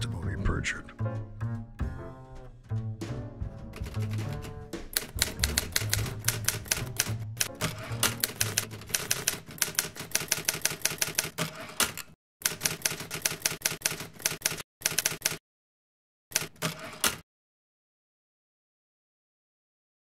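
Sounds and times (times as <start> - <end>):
low bass music: 0.0 - 8.8
typewriter keys clacking: 3.8 - 15.4.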